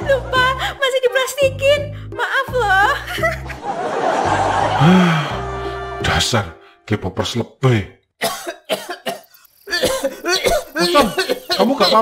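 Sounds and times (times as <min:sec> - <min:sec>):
cartoon character coughing: 0:08.2 - 0:12.0.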